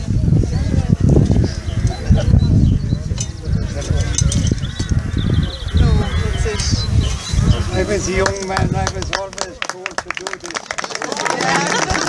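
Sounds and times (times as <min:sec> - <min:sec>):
wind rumble on microphone: 0:00.0 - 0:10.1
people talking outdoors: 0:00.0 - 0:12.0
bird trilling: 0:01.3 - 0:08.4.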